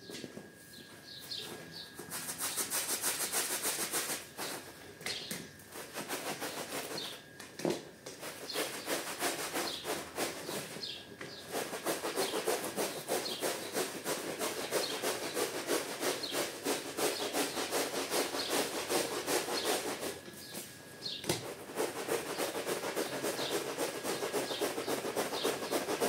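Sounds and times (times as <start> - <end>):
brush scrubbing wet rug: 2.1 - 4.6, 5.7 - 7.2, 8.2 - 20.6, 21.4 - 26.0.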